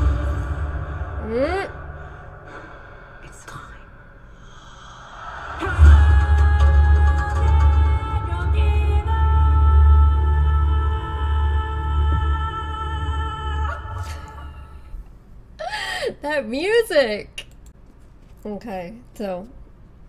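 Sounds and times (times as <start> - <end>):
trailer music: 0.0 - 3.3, 5.3 - 15.0
deep bass hit: 0.0 - 3.7, 4.4 - 15.0.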